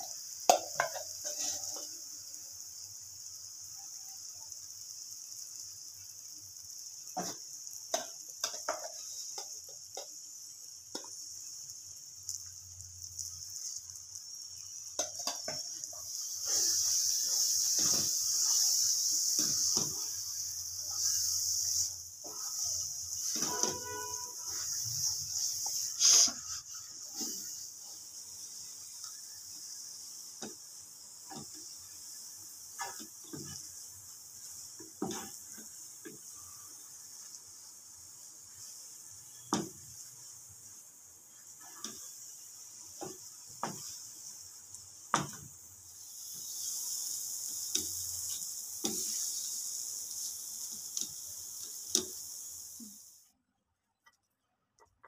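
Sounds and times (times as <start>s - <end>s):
food sizzling in a pan: 0.0s - 53.5s
spoon scraping a pan: 0.5s - 2.0s, 7.2s - 10.2s, 14.9s - 20.2s, 21.0s - 29.0s, 32.8s - 33.8s, 34.5s - 37.2s.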